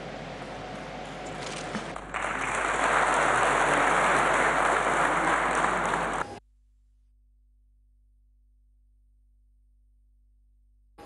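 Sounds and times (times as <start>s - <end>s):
audience applause: 0.0s - 6.4s.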